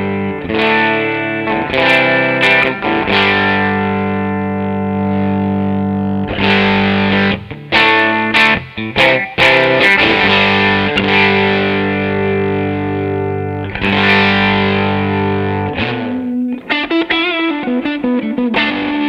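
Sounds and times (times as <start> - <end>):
electric guitar chords: 0.0 - 19.0.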